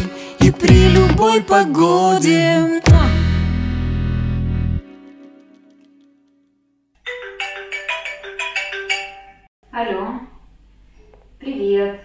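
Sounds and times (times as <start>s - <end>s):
mobile phone marimba ringtone: 7.0s - 9.5s.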